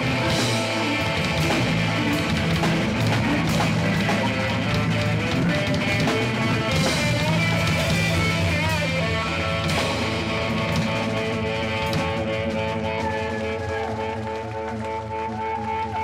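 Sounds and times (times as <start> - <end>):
drum and cymbal hits: 0.0 - 13.9
electric guitar: 0.0 - 16.0
live rock band playing: 0.0 - 16.0.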